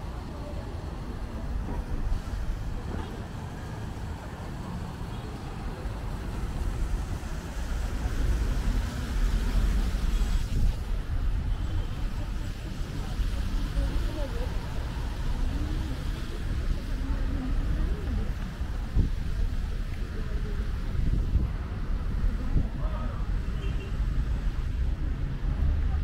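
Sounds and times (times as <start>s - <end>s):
road traffic passing: 0.0s - 26.0s.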